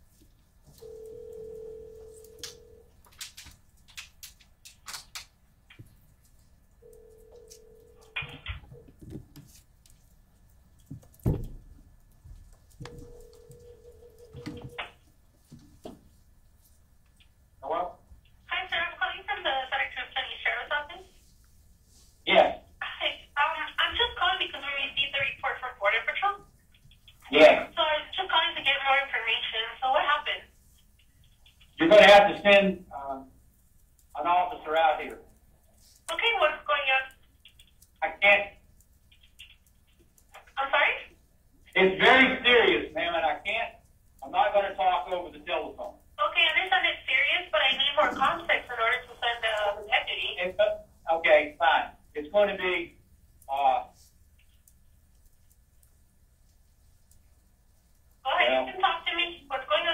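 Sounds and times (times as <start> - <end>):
voices over telephone line: 17.6 - 21.2, 22.3 - 26.5, 27.1 - 30.5, 36.1 - 37.1, 38.0 - 38.6, 40.4 - 41.1, 41.8 - 52.9, 58.3 - 59.9.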